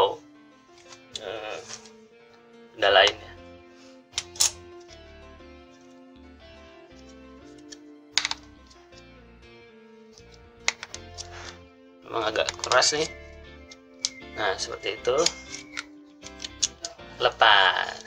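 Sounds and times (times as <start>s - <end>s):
background music with pulsing bass: 0.0s - 18.0s
plastic switch clicks and snaps: 4.2s - 4.6s, 7.6s - 8.5s, 10.2s - 11.3s, 12.4s - 13.1s, 15.2s - 17.0s.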